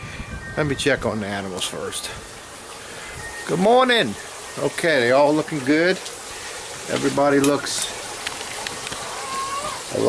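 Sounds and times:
steady background hiss: 0:00.2 - 0:10.0
chickens calling: 0:06.1 - 0:10.0.

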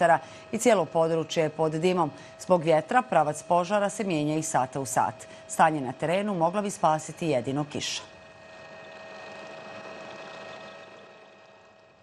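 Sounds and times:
helicopter engine whine: 0:00.0 - 0:12.0.

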